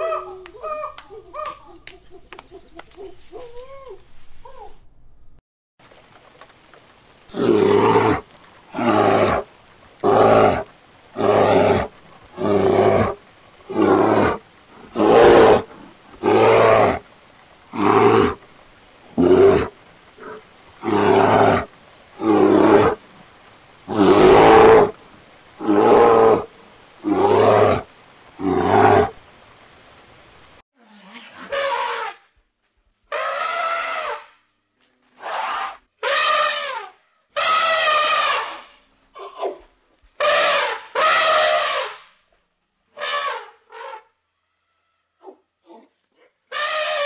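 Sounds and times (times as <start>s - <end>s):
bear roaring: 7.3s - 17.0s, 17.7s - 18.4s, 19.1s - 23.0s, 23.9s - 25.0s, 25.6s - 29.2s.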